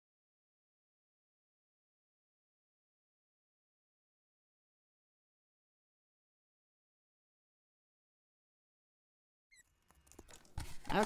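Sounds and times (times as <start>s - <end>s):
card rustling: 9.6s - 11.0s
scissors snipping cardstock: 10.1s - 11.0s.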